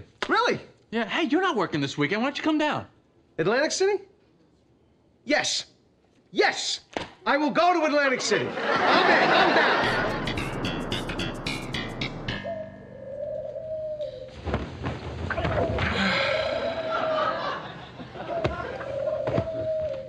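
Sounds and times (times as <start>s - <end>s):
studio audience laughter: 8.4s - 10.4s, 16.5s - 18.8s
short plucked music sting: 9.8s - 14.2s
doves cooing: 12.3s - 14.6s, 15.2s - 20.0s.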